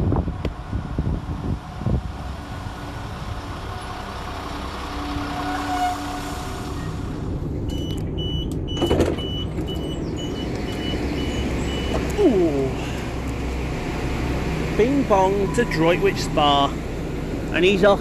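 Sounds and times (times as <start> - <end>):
train running and slowing: 0.0 - 18.0
brake squeal: 3.5 - 8.0, 15.1 - 16.8
door warning beeps: 7.7 - 12.1
doors shutting thump: 8.7 - 9.8.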